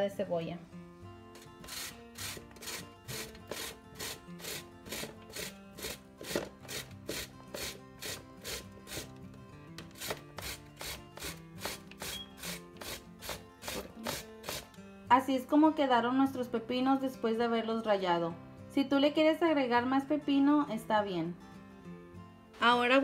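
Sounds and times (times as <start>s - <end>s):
cucumber grated on metal grater: 1.7s - 9.1s, 10.0s - 14.7s.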